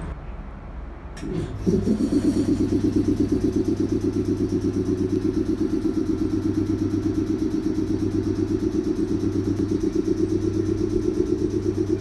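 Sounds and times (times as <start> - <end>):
electric train machinery humming: 1.2 - 12.0.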